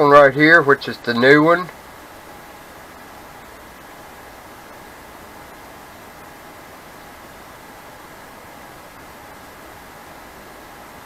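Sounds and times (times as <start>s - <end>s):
room tone hiss: 0.0s - 11.0s.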